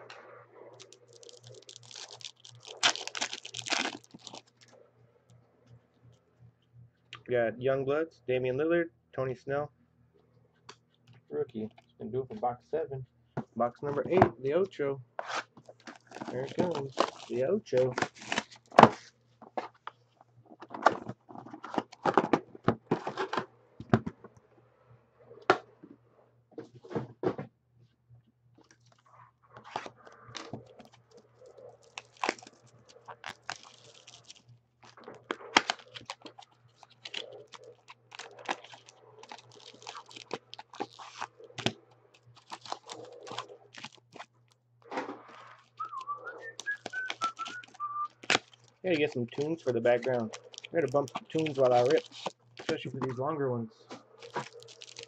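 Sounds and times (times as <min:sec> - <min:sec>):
foil packs crinkling and tearing: 0:00.8 - 0:04.7, 0:15.2 - 0:18.8, 0:29.7 - 0:44.3, 0:45.3 - 0:52.9, 0:54.2 - 0:55.0
plastic shrink wrap tearing: 0:00.8 - 0:04.7, 0:15.2 - 0:18.7, 0:29.7 - 0:44.3, 0:45.3 - 0:52.9, 0:54.2 - 0:55.0.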